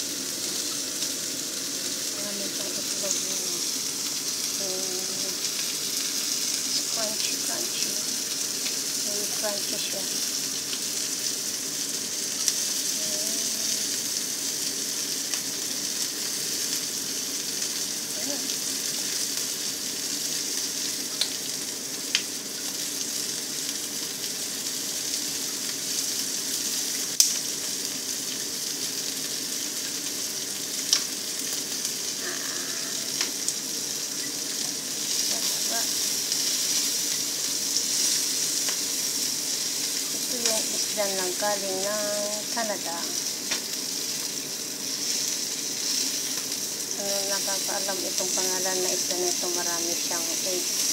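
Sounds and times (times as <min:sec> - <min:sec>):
fish sizzling in hot oil: 0:00.0 - 0:50.9.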